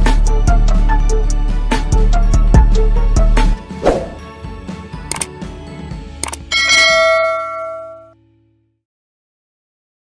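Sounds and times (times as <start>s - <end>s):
sharp clicks: 5.1s - 5.3s, 6.2s - 6.5s
bright bell ding: 6.5s - 8.2s.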